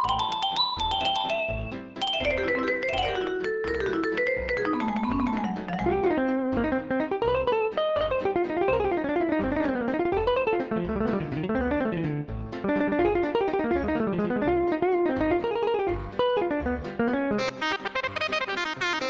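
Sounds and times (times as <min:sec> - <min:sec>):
low bass notes: 0:05.5 - 0:18.9.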